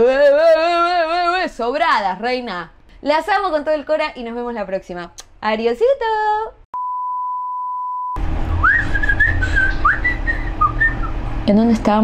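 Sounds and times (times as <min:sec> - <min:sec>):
woman speaking: 0:00.0 - 0:06.6, 0:11.4 - 0:12.0
steady electronic beep: 0:06.8 - 0:11.2
low hum: 0:06.8 - 0:12.0
woman whistling: 0:06.9 - 0:11.2.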